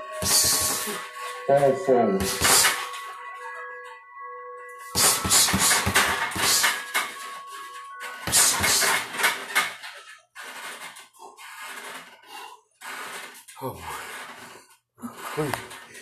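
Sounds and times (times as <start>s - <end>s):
background music with held notes: 0.0s - 10.4s.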